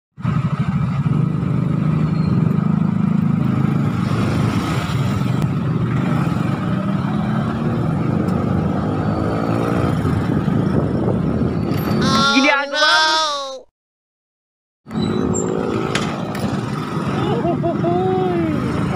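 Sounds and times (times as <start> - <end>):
motorcycle engine running: 0.2 - 8.3.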